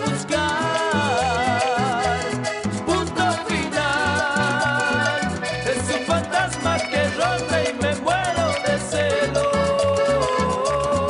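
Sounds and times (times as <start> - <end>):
band playing latin dance music: 0.0 - 11.0
bouncing bass line: 0.0 - 11.0
melodic line: 0.0 - 11.0
percussion: 0.0 - 11.0.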